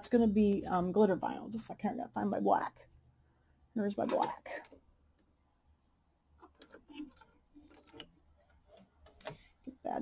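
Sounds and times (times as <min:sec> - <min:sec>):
small clicks and rustling: 0:06.4 - 0:09.7.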